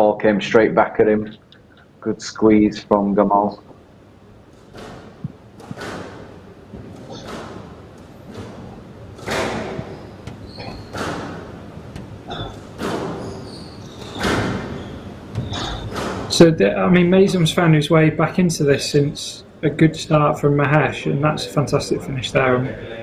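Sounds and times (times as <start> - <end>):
shoes squeaking on court floor: 4.5 - 16.4
squash ball striking rackets and walls: 4.5 - 16.4.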